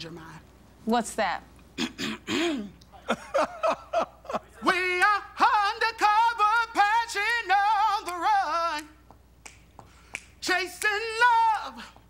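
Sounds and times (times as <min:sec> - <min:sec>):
person singing with vibrato: 0:04.6 - 0:09.0, 0:10.4 - 0:12.0
finger snaps: 0:08.0 - 0:12.0.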